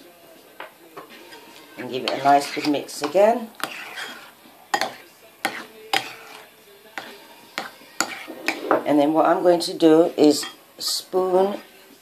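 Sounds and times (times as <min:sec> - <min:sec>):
spoon stirring thick dressing: 0:00.2 - 0:12.0
spoon clinking against bowl: 0:02.1 - 0:06.4, 0:10.2 - 0:10.6.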